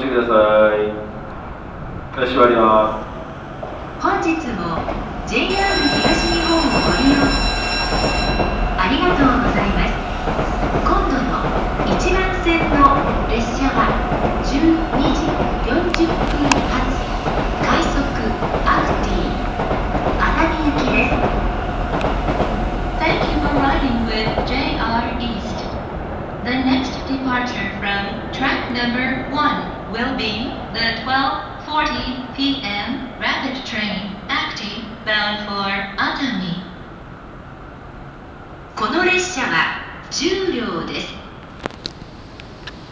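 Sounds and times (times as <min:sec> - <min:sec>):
train running rumble: 0:01.2 - 0:25.9
high steady electronic tone: 0:05.5 - 0:09.4.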